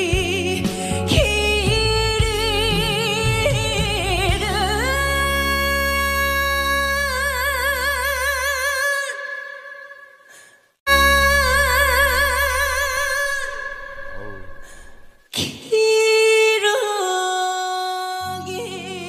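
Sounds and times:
person singing with vibrato: 0.0s - 19.0s.

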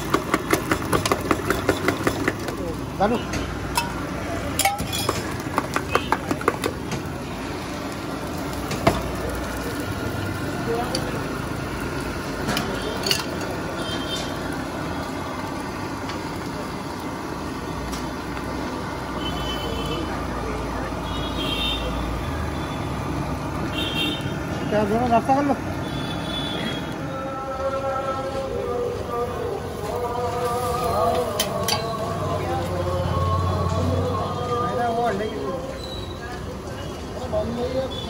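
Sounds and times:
batter sizzling on hot griddle: 0.0s - 20.0s, 29.5s - 32.8s
street noise: 0.0s - 38.0s
background voices: 26.8s - 37.8s.

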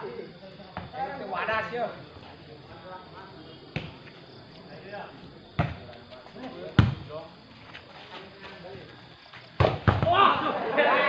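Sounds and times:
volleyball struck by hand: 9.6s - 10.2s.

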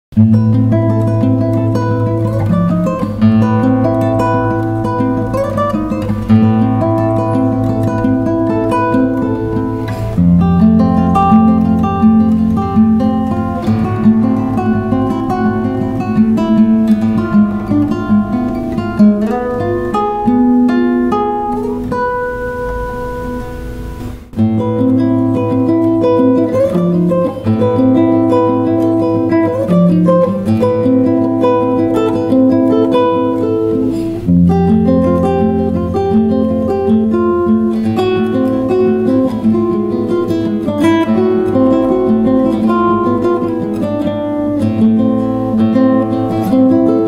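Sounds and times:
fingerpicked classical guitar: 0.1s - 47.0s.

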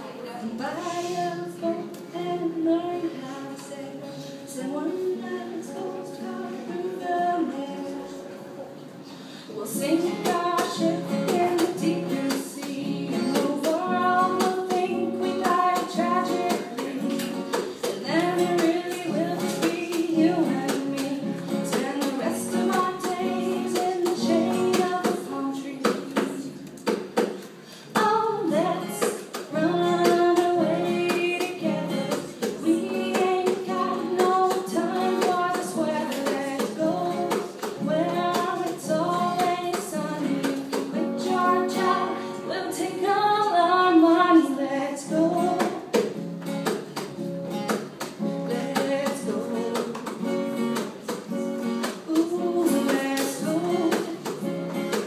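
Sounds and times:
person singing: 9.5s - 26.7s, 27.8s - 46.0s, 48.2s - 50.1s, 52.0s - 54.4s
acoustic guitar strummed: 9.7s - 27.2s, 28.0s - 55.0s.

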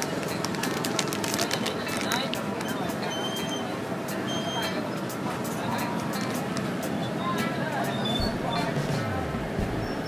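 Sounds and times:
plastic bag crinkling: 0.0s - 2.4s
street noise: 0.0s - 10.0s.

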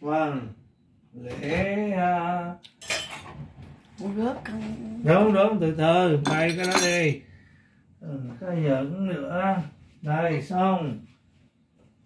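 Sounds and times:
kitchenware clattering: 2.8s - 3.4s, 6.2s - 7.2s.

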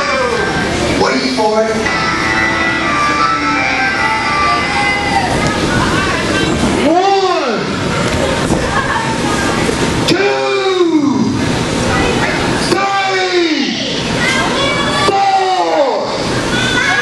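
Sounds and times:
voices shouting and talking: 0.0s - 17.0s
drawn-out yell: 1.8s - 6.2s.

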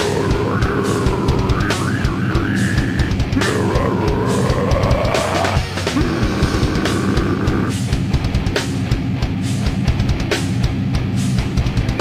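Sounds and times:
bass guitar: 0.0s - 12.0s
distorted electric guitars: 0.0s - 12.0s
rapid drumming: 0.0s - 12.0s.

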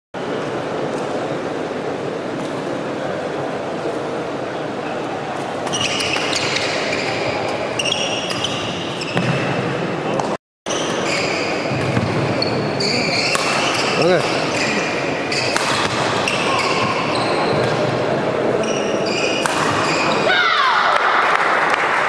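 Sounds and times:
shoes squeaking on floor: 5.6s - 9.6s, 10.7s - 15.6s, 16.2s - 17.8s, 18.6s - 20.3s
rackets hitting shuttlecock: 13.2s - 17.9s, 19.3s - 20.3s.

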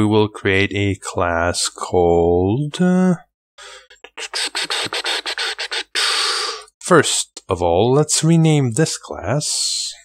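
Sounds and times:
scratchy rubbing strokes: 4.1s - 6.0s.

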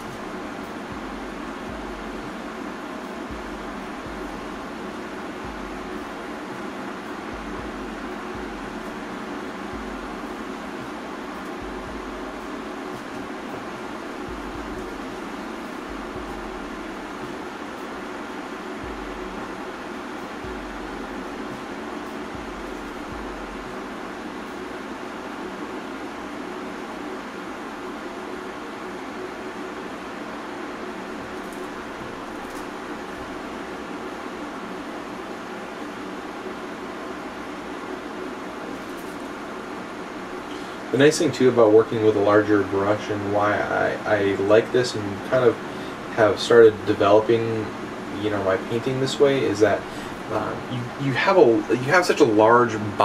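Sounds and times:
ventilation fan hiss: 0.0s - 53.0s.

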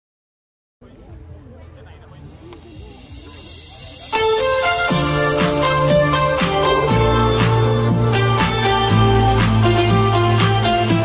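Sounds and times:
faint crowd chatter: 0.8s - 11.0s
dance music over loudspeakers: 2.2s - 11.0s
white-noise riser: 2.6s - 10.6s.

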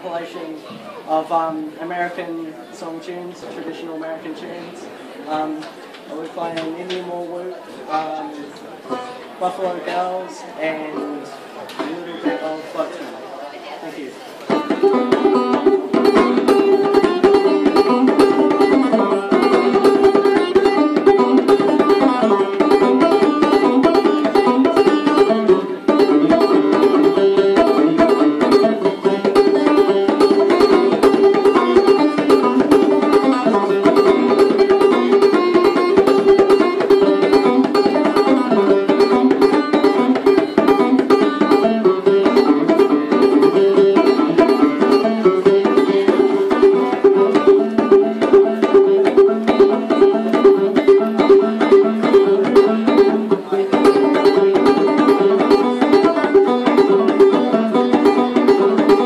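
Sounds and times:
solo banjo playing: 6.8s - 11.2s, 14.4s - 59.0s.

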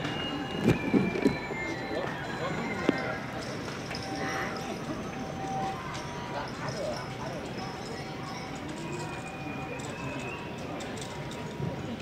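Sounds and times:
crowd chatter: 0.0s - 12.0s
faint music: 0.0s - 12.0s.

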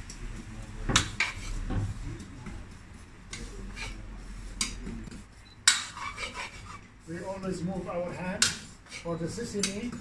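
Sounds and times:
metal spoon scraping a wok: 1.1s - 1.7s, 3.3s - 4.8s, 5.7s - 6.9s, 8.8s - 9.8s.

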